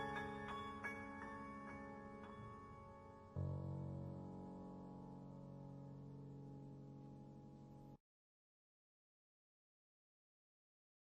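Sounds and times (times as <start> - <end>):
soft instrumental music: 0.0 - 8.0.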